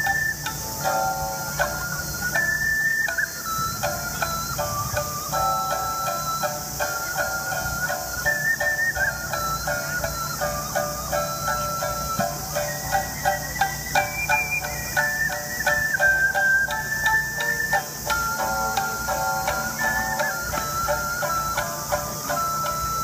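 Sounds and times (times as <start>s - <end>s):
ocarina melody: 0.0s - 23.0s
shamisen plucking: 0.0s - 23.0s.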